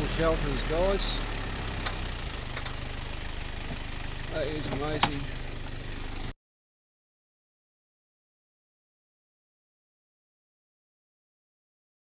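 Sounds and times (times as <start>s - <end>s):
vehicle engine running at low revs: 0.0s - 6.4s.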